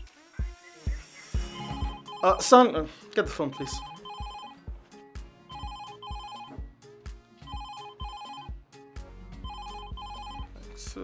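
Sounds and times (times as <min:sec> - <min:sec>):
phone ringtone beeping melody: 0:01.5 - 0:02.6, 0:03.5 - 0:04.6, 0:05.5 - 0:06.6, 0:07.4 - 0:08.6, 0:09.4 - 0:10.5.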